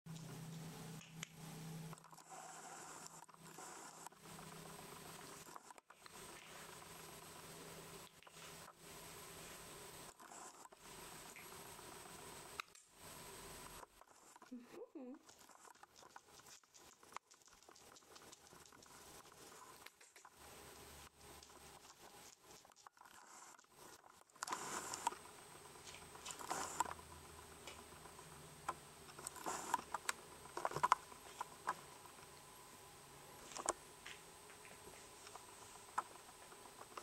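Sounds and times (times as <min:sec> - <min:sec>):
puppy claws clicking on wood: 0:15.3 - 0:20.3.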